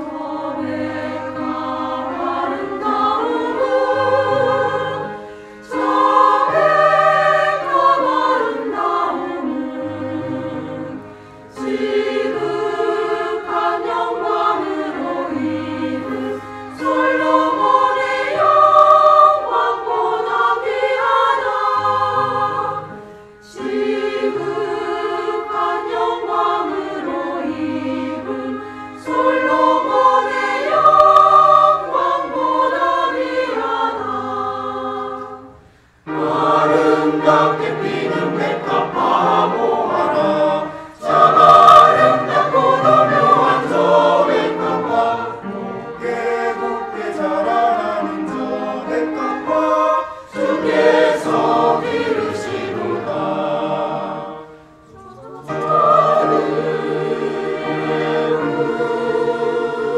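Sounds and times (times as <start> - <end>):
church choir singing: 0.0 - 59.9.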